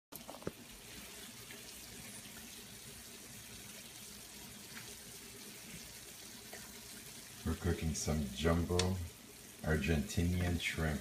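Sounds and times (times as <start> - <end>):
food sizzling in a pan: 0.2 - 11.0.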